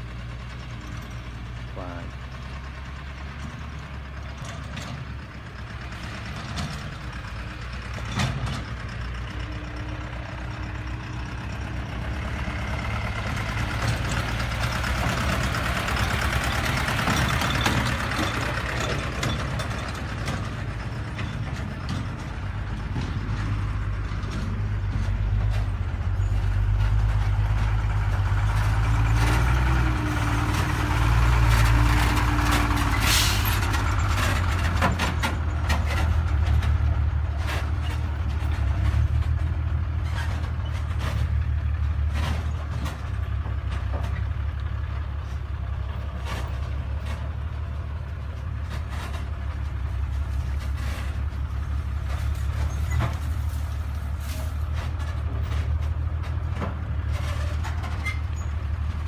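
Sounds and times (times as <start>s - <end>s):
dump truck engines: 0.0s - 59.0s
tyre and road noise: 0.0s - 59.0s.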